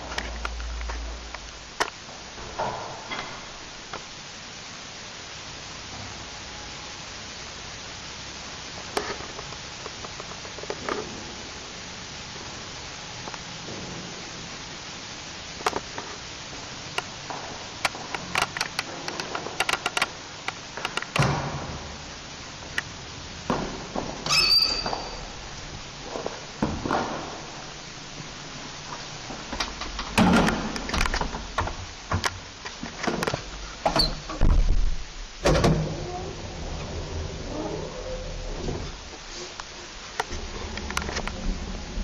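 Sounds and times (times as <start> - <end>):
low hum: 34.4 - 42.0
elevator doors clicking and thunking: 35.4 - 37.3.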